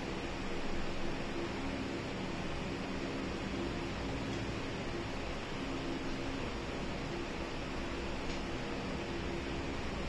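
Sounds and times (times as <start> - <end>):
faint low hum: 0.0 - 10.0
steady background hiss: 0.0 - 10.0.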